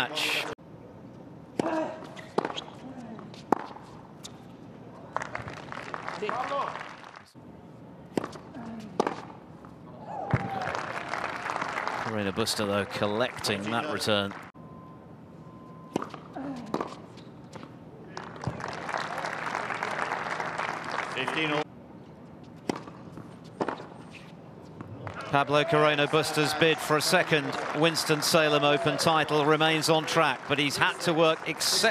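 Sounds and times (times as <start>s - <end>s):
tennis ball struck by rackets: 3.4s - 4.4s, 8.1s - 8.4s, 9.0s - 9.3s, 22.6s - 23.9s.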